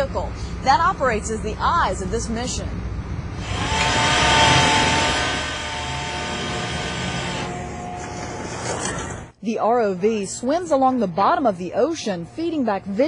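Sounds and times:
cable winch whining: 0:03.4 - 0:09.3.

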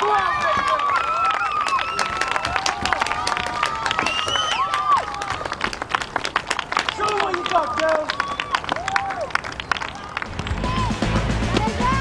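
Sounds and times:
people shouting and calling: 0:00.0 - 0:05.6, 0:06.9 - 0:12.0.

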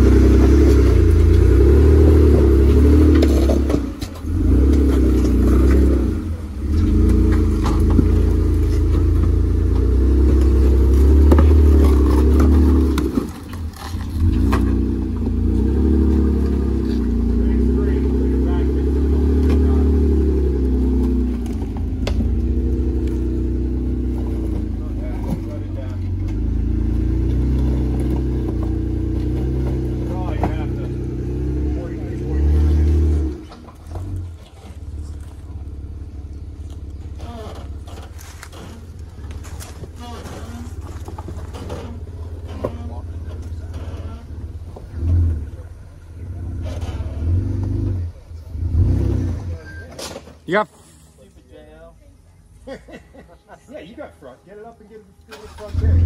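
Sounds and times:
off-road vehicle engine revving: 0:00.0 - 0:51.1, 0:55.2 - 0:56.0.

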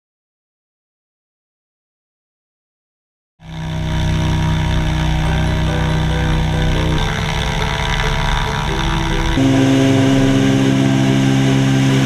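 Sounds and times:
light aircraft engine droning: 0:03.4 - 0:12.0.

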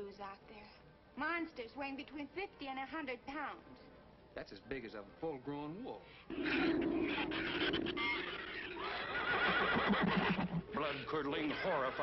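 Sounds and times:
warbling monster squeal: 0:06.3 - 0:10.5.

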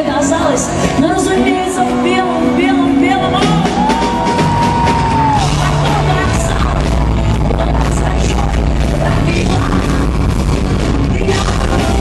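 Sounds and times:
live rock band playing: 0:00.1 - 0:12.0
person singing: 0:05.2 - 0:12.0.

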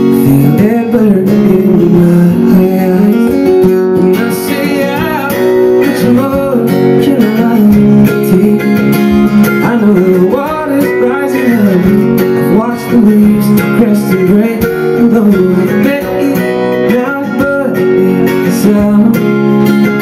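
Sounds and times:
strummed acoustic guitar: 0:00.0 - 0:20.0.

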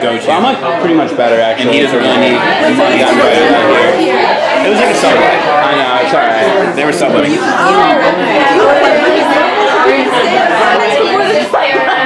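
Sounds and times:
people talking over one another: 0:00.0 - 0:12.0.

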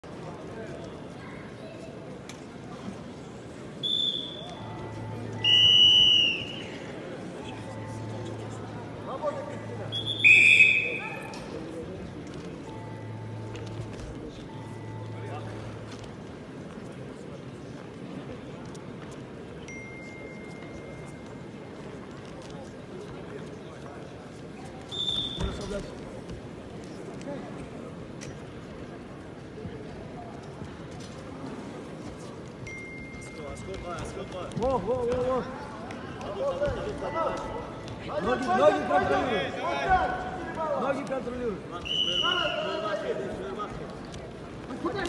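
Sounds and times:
murmur of voices: 0:00.0 - 0:45.0
referee's whistle blasts: 0:03.8 - 0:04.6, 0:05.4 - 0:06.8, 0:09.9 - 0:11.3, 0:24.9 - 0:25.7, 0:41.8 - 0:42.8.

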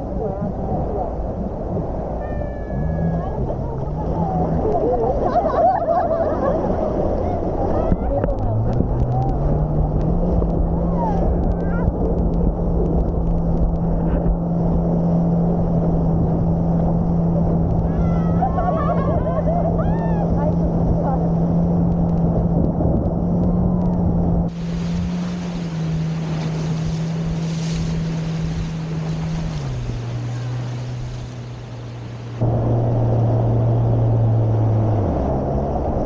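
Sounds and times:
motorboat engine droning: 0:00.0 - 0:36.0
rushing water: 0:00.0 - 0:36.0
wind on microphone: 0:00.0 - 0:36.0
voices and squeals: 0:02.0 - 0:09.4.

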